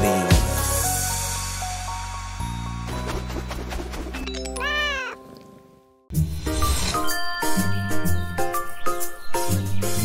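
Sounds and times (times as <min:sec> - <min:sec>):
cartoon cat meow: 0:04.6 - 0:05.2.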